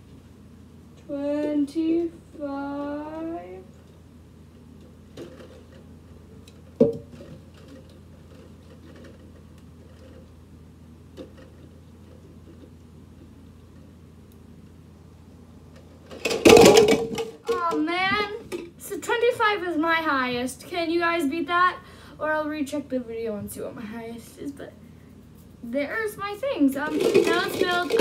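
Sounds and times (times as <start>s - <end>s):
plastic cups clattering down: 5.1s - 5.9s, 16.0s - 18.7s, 26.7s - 28.0s.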